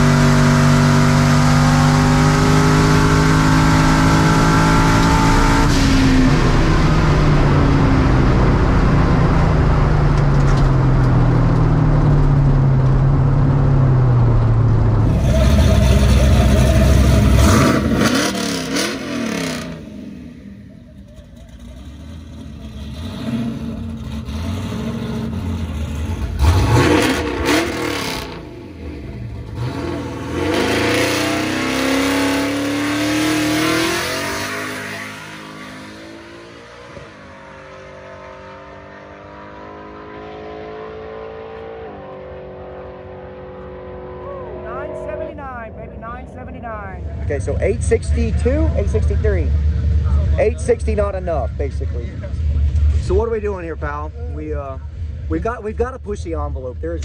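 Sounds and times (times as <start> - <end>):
engine rising in pitch: 0.0 - 55.6
vehicles running: 0.0 - 57.0.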